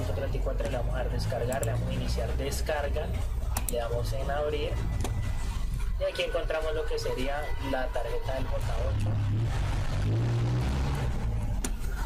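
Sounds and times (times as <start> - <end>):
low hum: 8.5 - 12.0.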